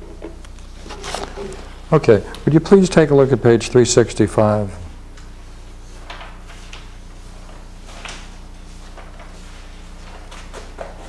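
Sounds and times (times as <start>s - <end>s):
steady low hum: 0.0s - 11.0s
paper rustling: 0.8s - 1.7s, 5.9s - 11.0s.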